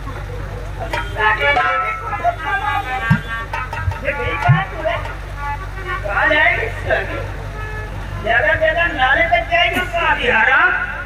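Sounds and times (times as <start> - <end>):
harmonium playing melody: 0.0 - 10.1.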